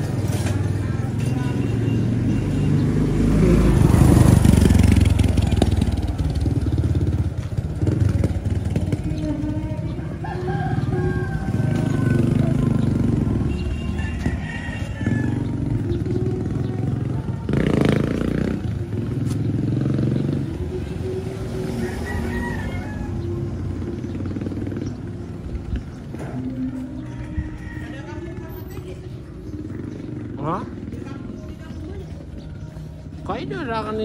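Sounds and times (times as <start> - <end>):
motorcycle engines: 0.0 - 34.0
voices: 0.0 - 34.0
music: 15.4 - 34.0.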